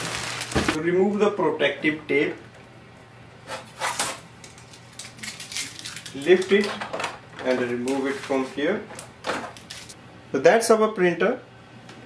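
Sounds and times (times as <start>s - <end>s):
tape peeling off plastic: 3.8s - 6.7s.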